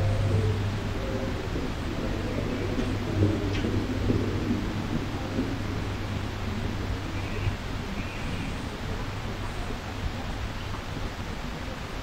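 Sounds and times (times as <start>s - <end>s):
low steady rumble: 0.0s - 11.3s
faint crowd hubbub: 0.0s - 12.0s.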